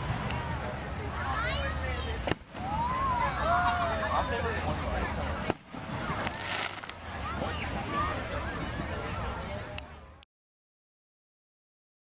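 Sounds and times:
faint firework crackling: 5.2 - 7.5
firework bang: 5.4 - 7.0.

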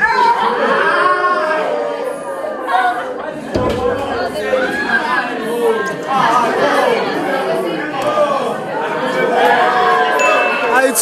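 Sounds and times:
people talking over one another: 3.1 - 11.0
low thud: 3.3 - 5.4.

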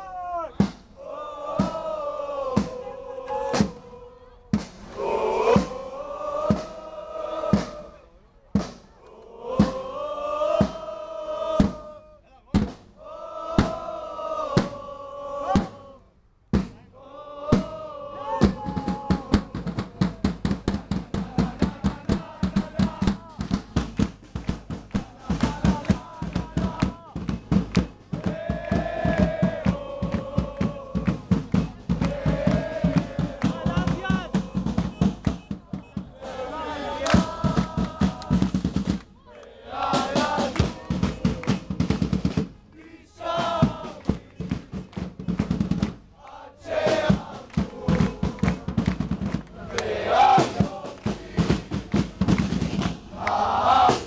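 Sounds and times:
crowd chanting: 0.0 - 12.3, 12.9 - 16.1, 16.8 - 54.0
drum beat: 0.4 - 12.0, 12.6 - 14.9, 15.5 - 15.9, 16.5 - 54.0
hand-clapping: 23.1 - 27.0, 27.6 - 33.6, 35.1 - 35.4, 37.0 - 42.4, 43.9 - 46.4, 47.4 - 49.9, 50.9 - 51.2, 52.3 - 53.4.

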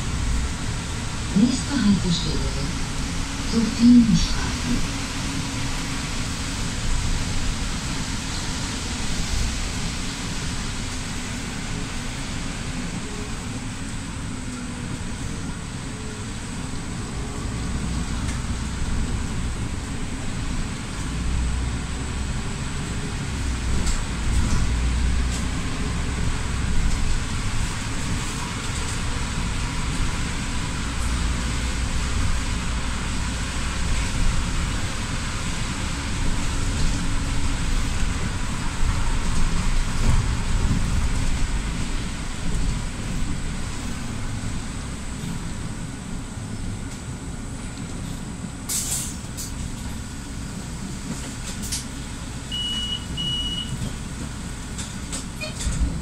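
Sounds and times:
bus engine rumble: 0.0 - 56.0
rain on bus: 0.0 - 56.0
tyres hissing on wet road: 0.0 - 56.0.

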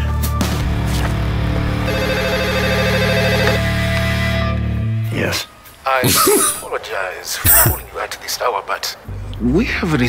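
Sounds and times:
telephone ringing: 1.9 - 3.7.

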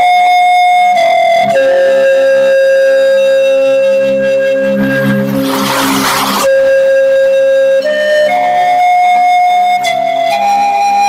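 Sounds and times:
slow instrumental music: 0.0 - 11.0.

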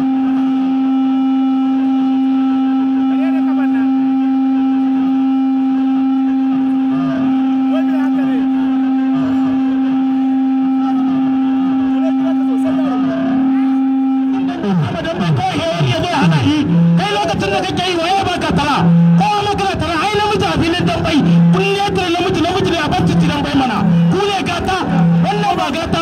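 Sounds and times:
crowd voices: 0.0 - 26.0
loud steady tone: 0.0 - 26.0.

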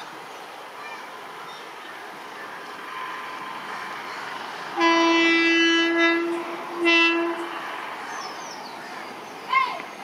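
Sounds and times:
locomotive horn blasts: 4.8 - 7.6.

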